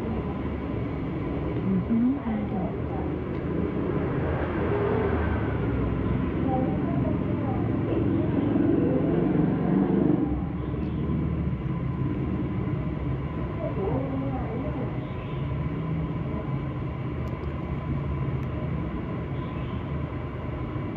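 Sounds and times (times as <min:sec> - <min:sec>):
low background rumble: 0:00.0 - 0:20.9
indistinct voices: 0:01.4 - 0:03.4.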